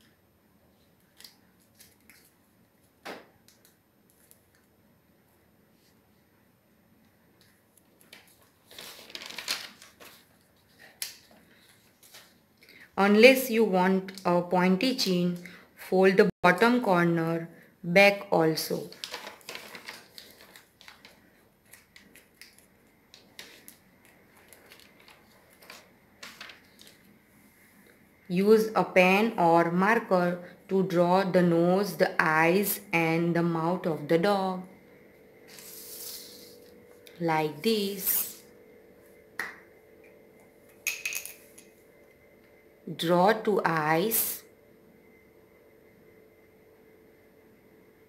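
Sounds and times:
paper being folded and creased: 7.9 - 12.4, 18.9 - 27.1.

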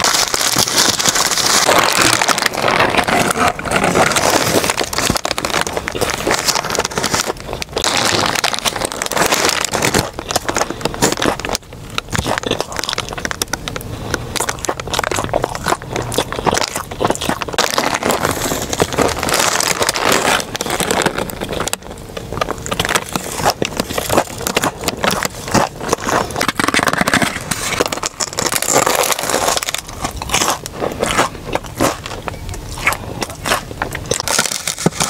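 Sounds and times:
crunchy chewing: 0.0 - 35.0.

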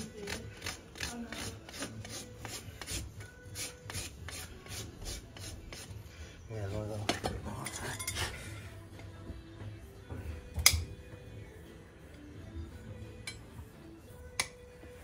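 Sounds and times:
hoof rasp filing: 0.0 - 6.1.

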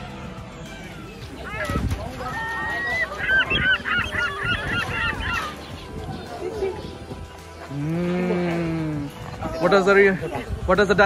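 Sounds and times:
birds calling: 0.6 - 11.0.

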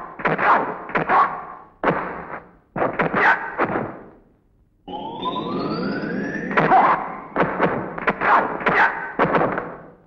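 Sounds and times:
rising whistling tone: 4.9 - 7.4.

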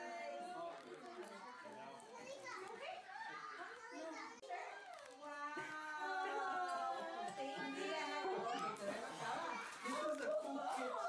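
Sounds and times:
young children chattering: 6.2 - 11.0.

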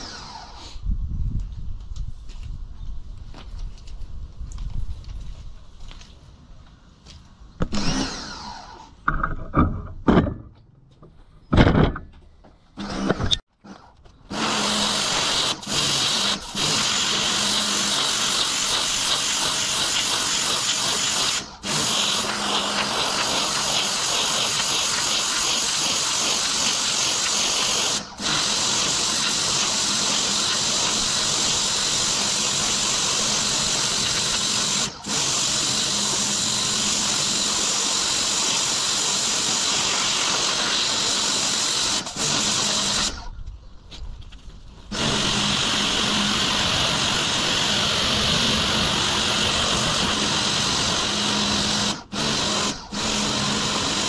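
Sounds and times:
pressure washer spraying concrete: 14.3 - 43.2, 44.9 - 54.0.

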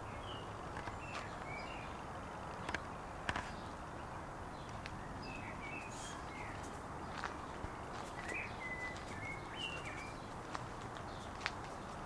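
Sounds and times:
outdoor background hiss: 0.0 - 12.0.

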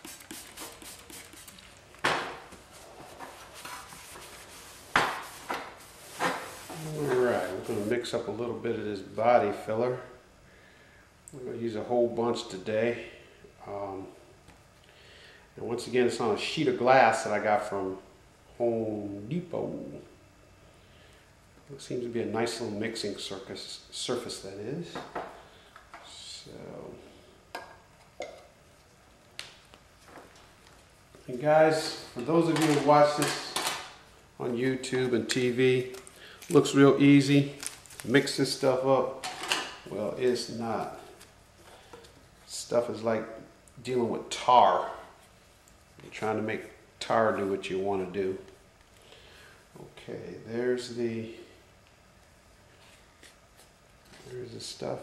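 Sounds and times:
cloth rubbing on sheet metal: 0.0 - 1.7, 2.6 - 8.0
spray bottle squirting: 0.0 - 1.7.

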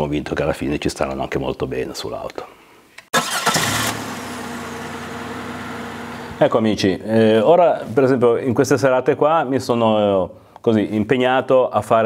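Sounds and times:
car engine starting and idling: 3.2 - 6.5.

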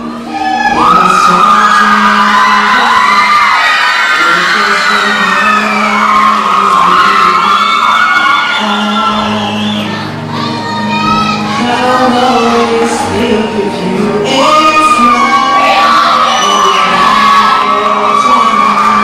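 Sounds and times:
audience cheering and shrieking: 0.0 - 19.0
ballad backing track: 0.0 - 19.0.

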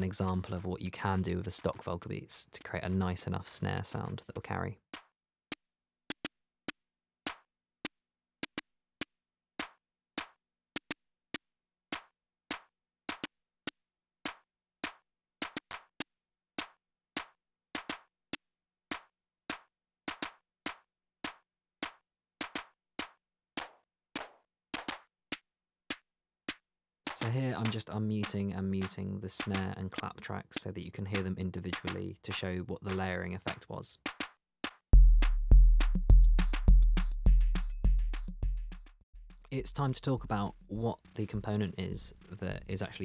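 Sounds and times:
drum machine snare and clap hits: 11.9 - 13.3, 14.3 - 16.0, 16.6 - 18.1, 18.9 - 42.3.

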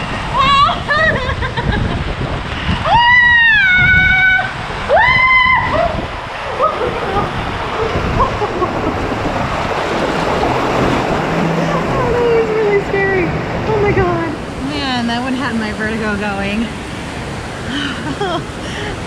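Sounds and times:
water rushing and splashing: 0.0 - 19.0
woman's high-pitched cries: 0.3 - 1.7.

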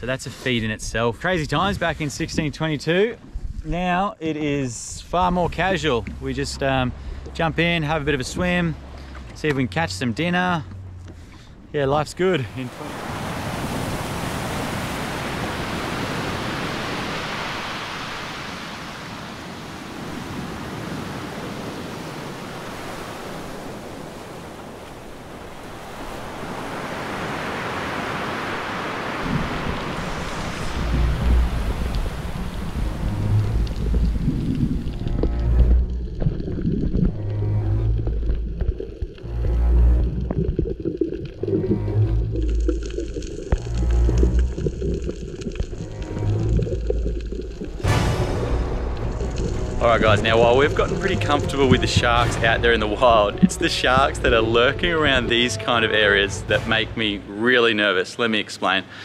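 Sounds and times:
ocean surf washing over reef: 4.9 - 37.8, 39.2 - 57.8.

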